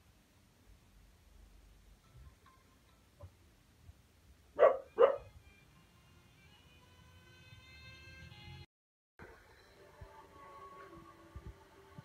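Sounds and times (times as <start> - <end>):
dog barking: 4.6 - 5.3.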